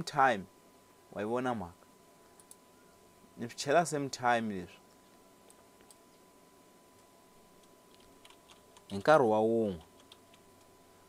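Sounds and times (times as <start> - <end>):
computer keyboard typing: 2.4 - 2.6, 7.0 - 10.7.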